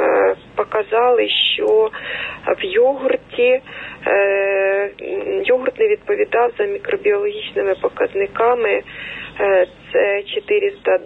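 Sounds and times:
woman speaking over telephone: 0.0 - 11.0.

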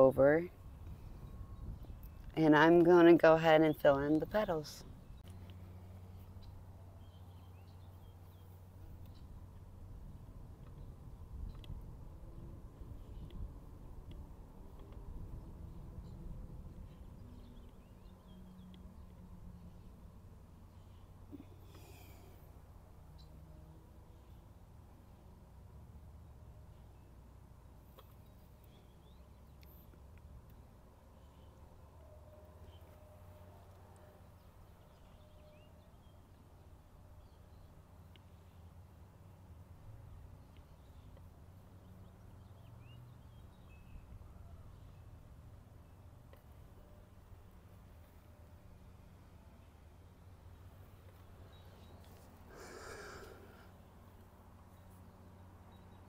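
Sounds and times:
person breathing: 20.8 - 22.6, 52.5 - 53.8.

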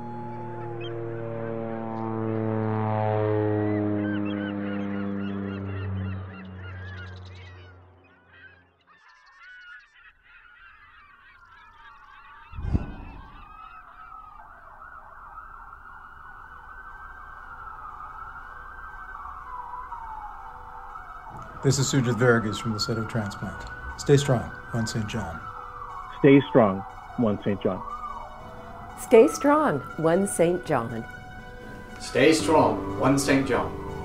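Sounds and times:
emergency vehicle siren wailing: 0.0 - 9.8, 11.0 - 34.0
birds chirping: 3.6 - 34.0
loud thump: 12.6 - 13.6.

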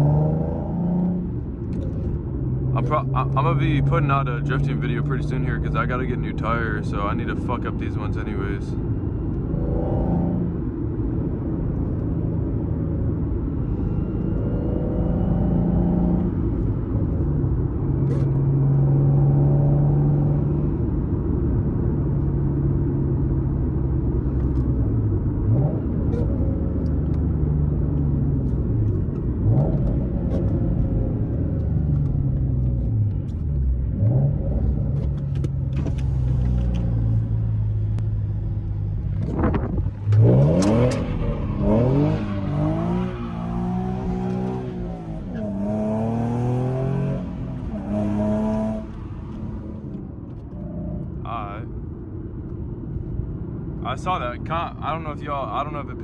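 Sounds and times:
car engine with loud exhaust: 0.0 - 56.0.

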